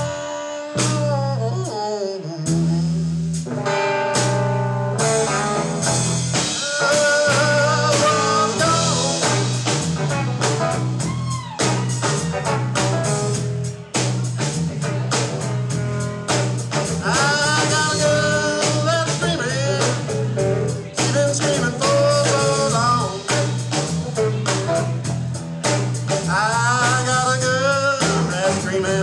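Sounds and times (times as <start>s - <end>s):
drum kit: 0.0s - 29.0s
electric bass: 0.0s - 29.0s
electric guitar lead lines: 0.0s - 29.0s.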